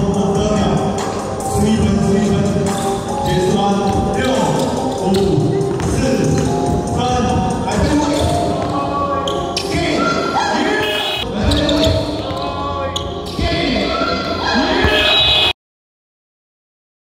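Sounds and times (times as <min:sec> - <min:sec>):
voices in a hall: 0:00.0 - 0:15.5
sneakers squeaking: 0:02.7 - 0:15.5
basketball dribbling on hardwood: 0:05.1 - 0:06.8.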